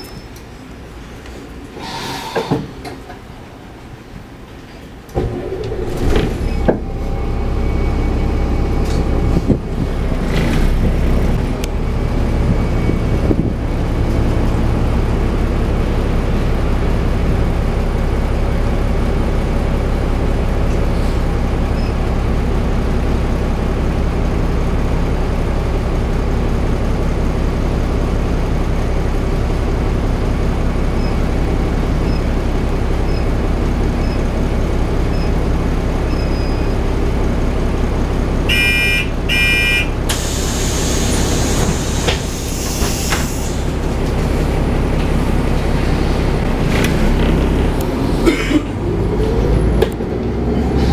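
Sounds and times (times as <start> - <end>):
bus engine idling: 0.0 - 50.9
electronic door-warning beeps: 38.5 - 39.9
door air hiss: 40.1 - 43.7.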